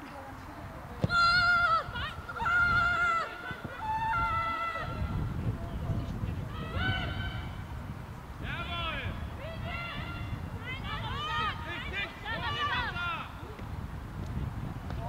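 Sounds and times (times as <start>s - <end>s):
women shouting and cheering: 1.0s - 5.6s, 6.3s - 7.9s, 8.6s - 13.6s.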